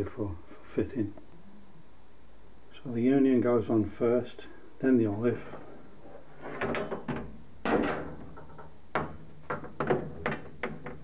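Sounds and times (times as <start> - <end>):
metal pipe fittings knocking and clicking: 6.6 - 11.0.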